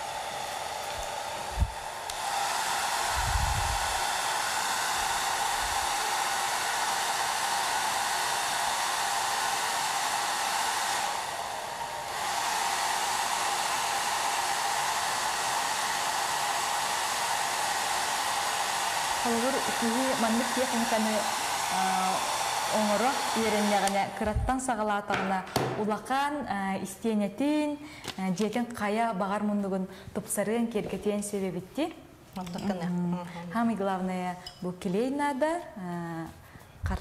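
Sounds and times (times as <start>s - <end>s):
hair dryer running: 0.0s - 26.0s.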